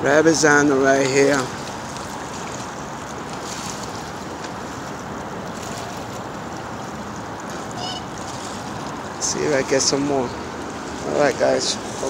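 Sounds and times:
choppy water: 0.0 - 12.0.

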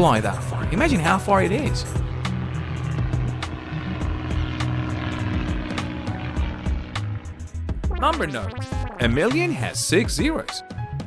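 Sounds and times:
propeller plane drone: 0.0 - 11.0
background music with clicking beat: 5.4 - 10.9.

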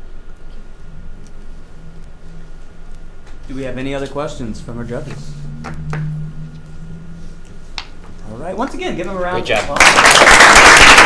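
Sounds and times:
low steady hum: 0.0 - 9.8.

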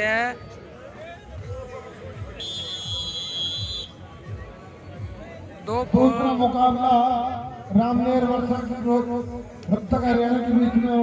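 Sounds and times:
crowd babble: 0.0 - 11.0
referee's whistle blast: 2.4 - 4.0.

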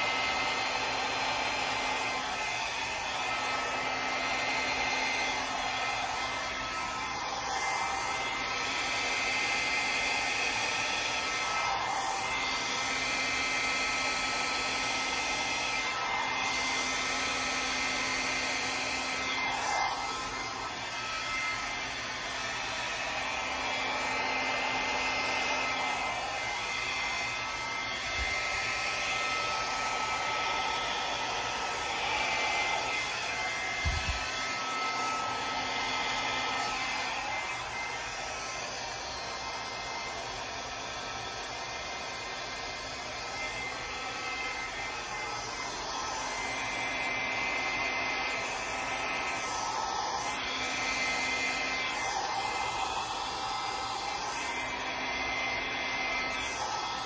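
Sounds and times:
blow dryer running: 0.0 - 57.0.

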